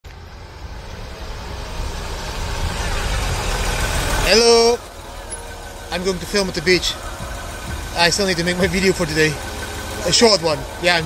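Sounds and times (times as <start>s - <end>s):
car approaching: 0.0s - 11.0s.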